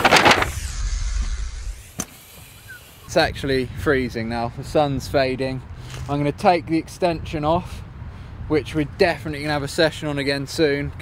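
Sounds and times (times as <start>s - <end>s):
brief rush of noise: 0.0s - 3.1s.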